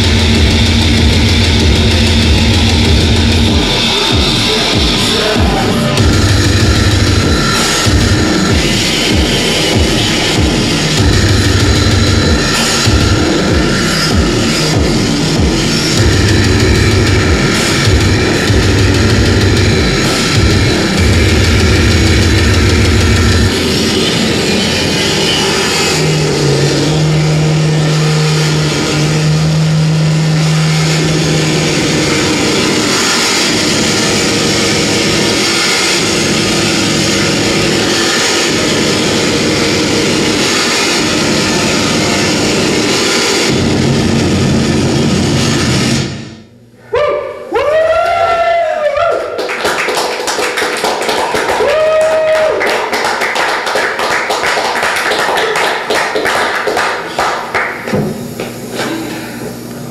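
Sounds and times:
pulsing low bass tone: 0:00.0 - 0:46.7
steady low drone: 0:00.0 - 0:46.8
distorted electronic noise music: 0:00.0 - 0:59.9.

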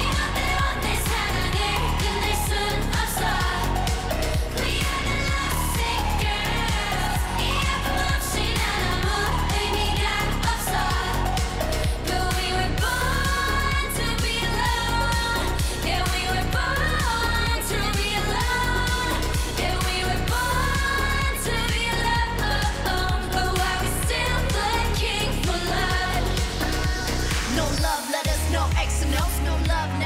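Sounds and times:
woman singing: 0:00.0 - 0:30.0
kick drum beat: 0:28.3 - 0:29.9.

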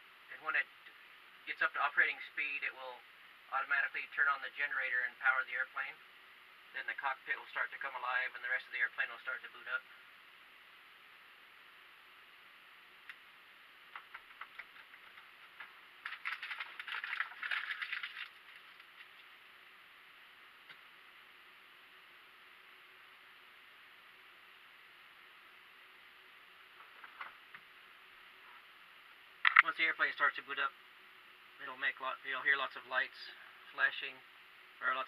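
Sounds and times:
background hiss: 0:00.0 - 0:35.0
rattling and rustling: 0:13.9 - 0:19.4.

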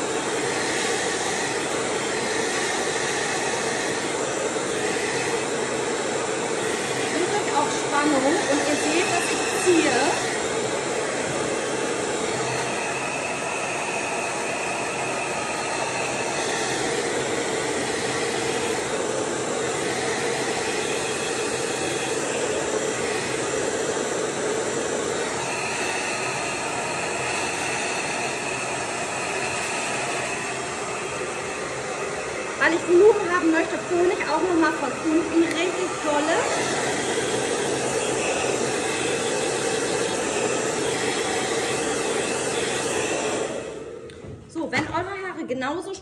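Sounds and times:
hair dryer running: 0:00.0 - 0:46.0
high whistle in airflow: 0:12.3 - 0:18.9, 0:19.7 - 0:23.6.

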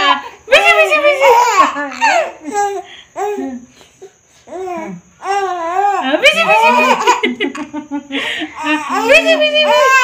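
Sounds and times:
baby laughing: 0:06.3 - 0:07.7.

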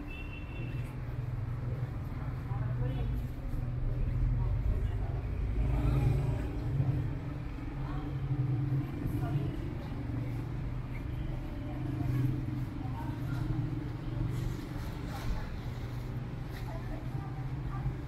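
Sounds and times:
people talking: 0:01.7 - 0:18.0.

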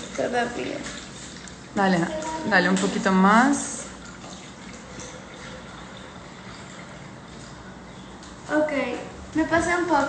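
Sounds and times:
milk pouring into a bowl: 0:00.0 - 0:08.0.

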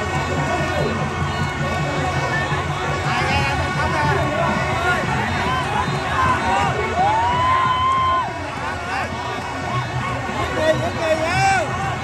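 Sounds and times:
crowd shouting and cheering: 0:00.0 - 0:12.0
long drawn-out shout: 0:04.7 - 0:12.0.

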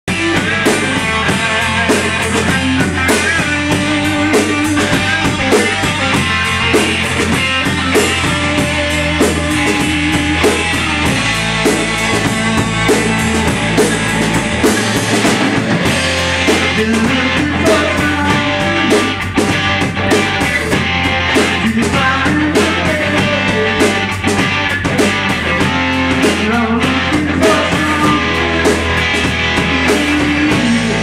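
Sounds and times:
electric bass: 0:00.0 - 0:31.0
drum kit beat: 0:00.1 - 0:31.0
electric guitars: 0:00.1 - 0:31.0.

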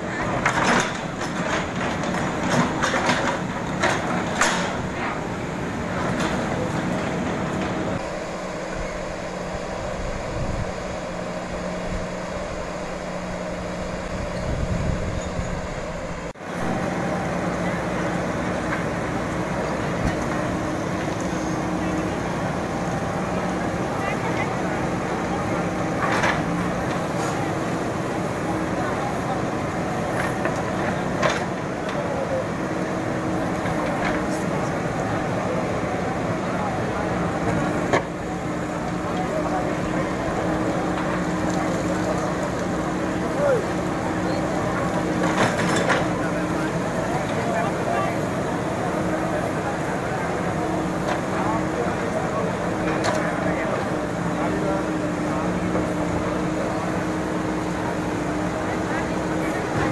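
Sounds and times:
people talking: 0:00.0 - 0:12.1, 0:13.1 - 0:59.9
diesel engine running: 0:00.0 - 0:59.9.

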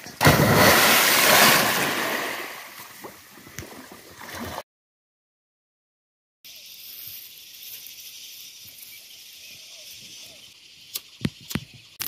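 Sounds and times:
churned water rushing: 0:00.0 - 0:02.8
body splashing into pond: 0:00.0 - 0:04.6.

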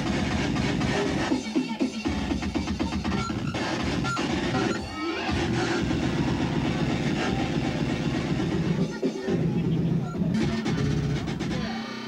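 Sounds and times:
electronic rave music: 0:00.0 - 0:12.0.

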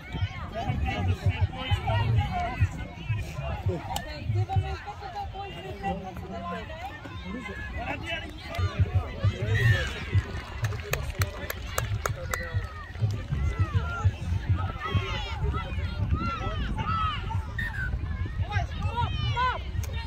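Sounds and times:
people calling and talking: 0:00.0 - 0:20.0.

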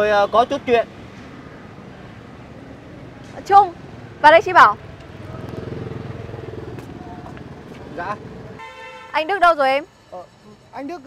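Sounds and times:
motorbike engine passing: 0:01.0 - 0:08.6.

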